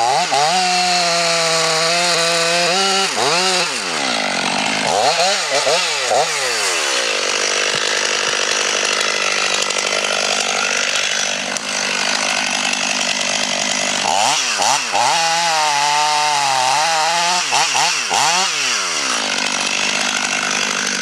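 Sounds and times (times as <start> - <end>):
chainsaw cutting wood: 0.0 - 21.0
chainsaw idling and revving: 0.0 - 21.0.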